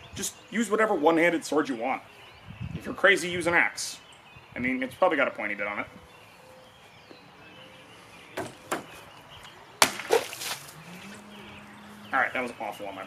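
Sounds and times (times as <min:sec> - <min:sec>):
blade stabbing plastic jug: 0:09.8 - 0:10.7
blade slashing jug: 0:09.8 - 0:10.8
water splashing: 0:09.8 - 0:11.2.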